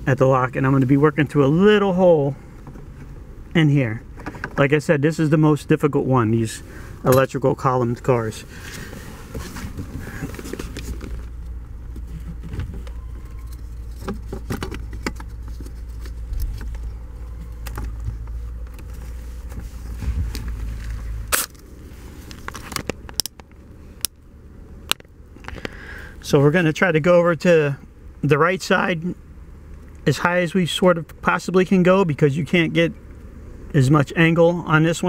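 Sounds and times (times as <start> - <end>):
knocks and scrapes: 8.6 - 21.2
low rumble: 9.0 - 22.3.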